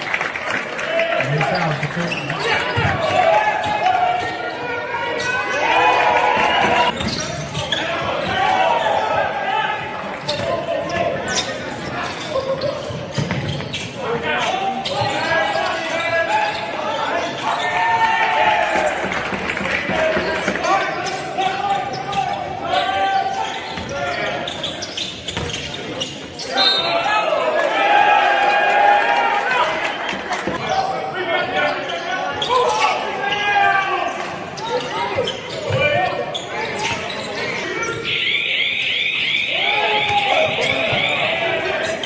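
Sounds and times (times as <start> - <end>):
players calling out: 0.8 - 42.0.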